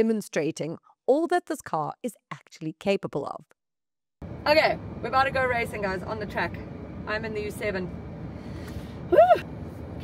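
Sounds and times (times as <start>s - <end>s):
woman whooping: 9.1s - 9.5s.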